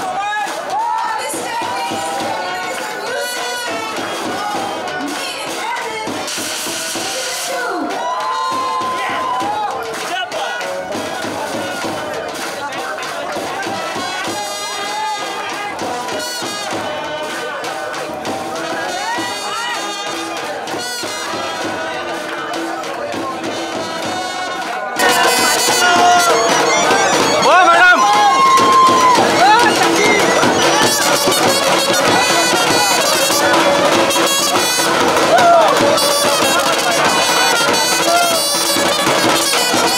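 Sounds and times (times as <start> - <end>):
crowd voices and cheering: 0.0 - 39.9
small live band playing: 0.2 - 39.9.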